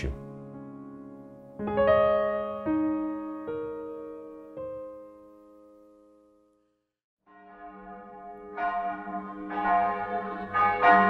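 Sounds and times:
church bells ringing: 0:07.3 - 0:11.0.

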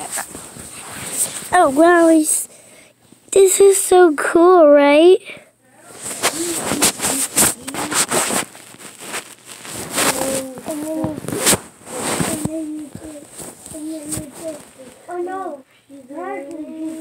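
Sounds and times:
rustling and crackling handling: 0:05.9 - 0:17.0
child vocalizing: 0:10.0 - 0:17.0.

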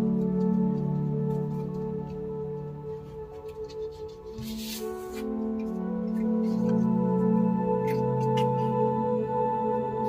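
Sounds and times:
soft ambient music: 0:00.0 - 0:10.0
paper card rustling: 0:03.6 - 0:05.4.

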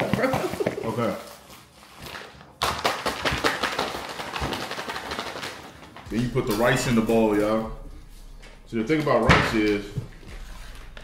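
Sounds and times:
plastic chip bag crinkling: 0:00.2 - 0:08.3.

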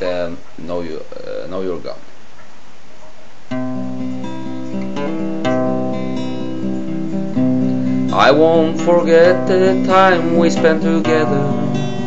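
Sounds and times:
acoustic guitar strumming chords: 0:03.5 - 0:12.0.

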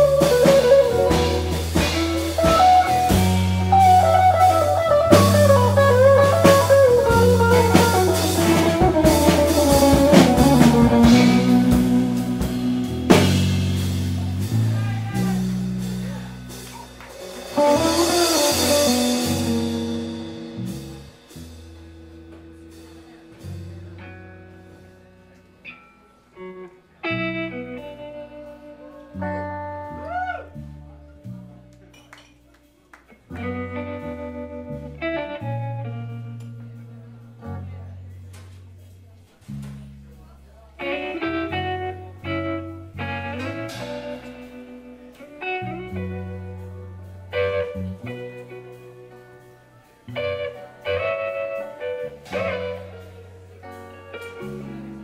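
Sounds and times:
low bass line: 0:00.0 - 0:25.0
drum kit: 0:00.0 - 0:25.7, 0:31.2 - 0:40.1, 0:40.8 - 0:55.0
guitar notes: 0:00.0 - 0:32.1, 0:33.1 - 0:38.7, 0:40.8 - 0:55.0.

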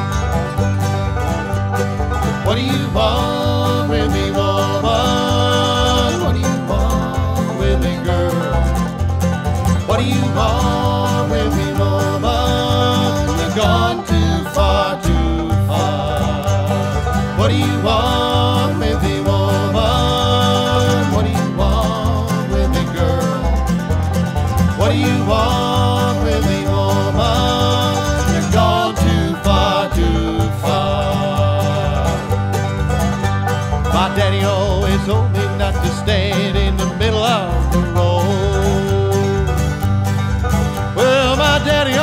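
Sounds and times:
bluegrass band playing: 0:00.0 - 0:42.0.

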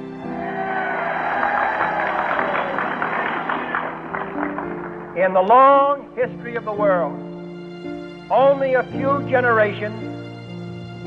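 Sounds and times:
soft background music: 0:00.0 - 0:11.0
crowd applauding: 0:00.2 - 0:05.6.

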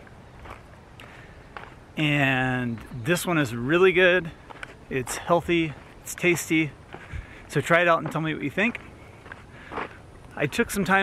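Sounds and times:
footsteps on sandy dirt: 0:00.0 - 0:11.0.

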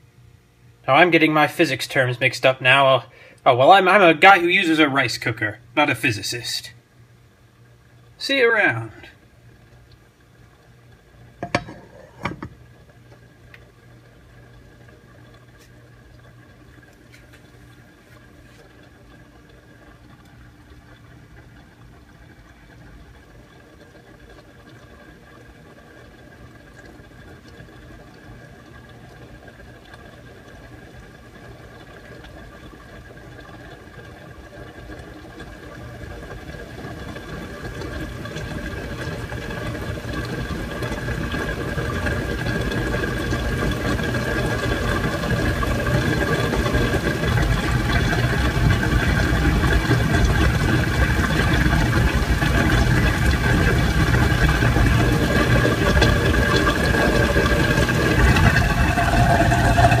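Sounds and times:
garbage disposal running: 0:00.8 - 0:06.8, 0:07.6 - 1:00.0.

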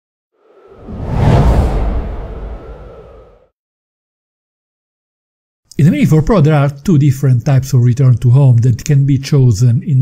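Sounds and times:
whoosh with deep rumble: 0:00.4 - 0:03.5.

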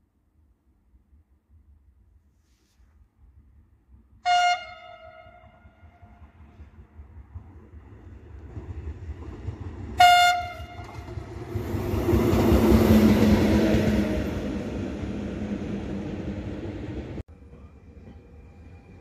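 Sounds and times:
freight train rolling past: 0:03.9 - 0:19.0
locomotive horn blast: 0:04.2 - 0:06.1, 0:10.0 - 0:11.2.

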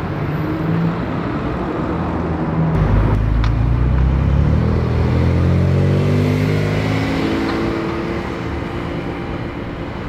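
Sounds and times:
deep steady car engine passing: 0:00.0 - 0:10.0.

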